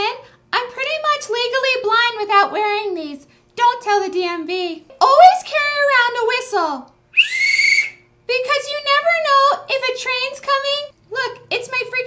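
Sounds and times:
shrill metal whistle: 7.2s - 8.1s.

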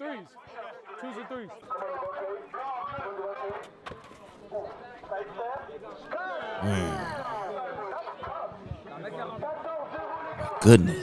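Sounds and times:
people talking and calling out: 6.6s - 7.5s, 10.4s - 11.0s.

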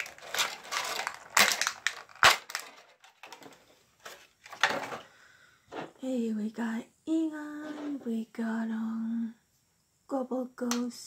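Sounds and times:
plastic packaging crinkling: 0.0s - 5.0s.

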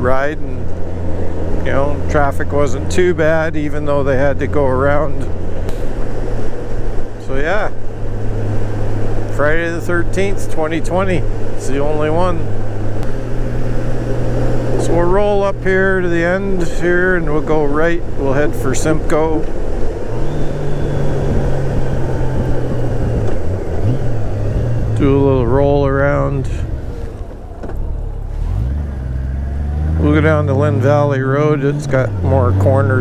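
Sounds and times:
motorcycle engine cruising drone: 0.0s - 33.0s
wind and road noise: 0.0s - 33.0s.

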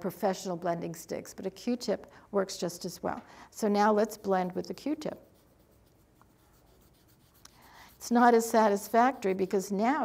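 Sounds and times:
cotton swab rubbing on paper: 3.6s - 10.0s.

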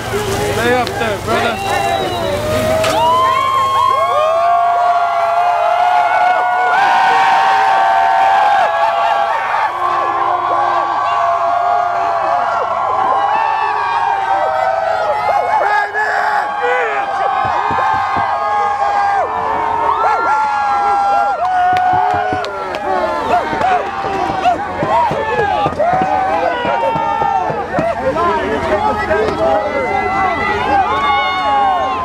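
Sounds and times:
crowd cheering and shouting: 0.0s - 32.0s.

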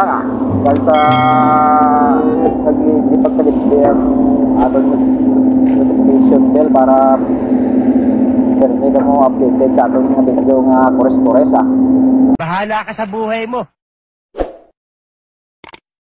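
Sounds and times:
excavator engine droning: 0.0s - 12.4s.

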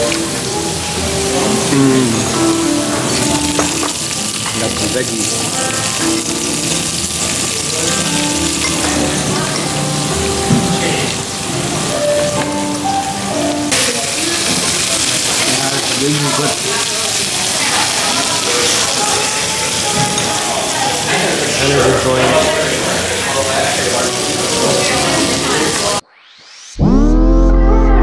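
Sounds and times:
background music: 0.0s - 26.0s
food sizzling on griddle: 0.0s - 26.0s.

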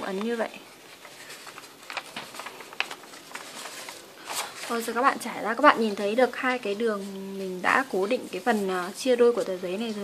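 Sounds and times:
wrapping paper rustling and crackling: 0.0s - 10.0s.

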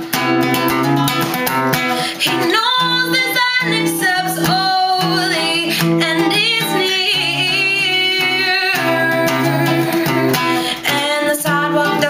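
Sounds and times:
strummed acoustic guitar: 0.0s - 12.0s
woman singing long notes: 2.6s - 12.0s.

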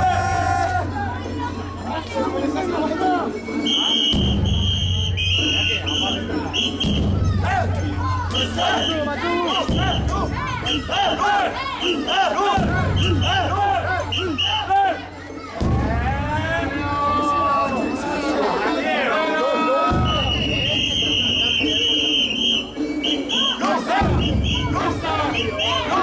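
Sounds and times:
crowd chanting and shouting: 0.0s - 26.0s
whistle blasts: 3.4s - 7.2s, 8.3s - 11.0s, 11.8s - 14.8s, 20.0s - 26.0s.

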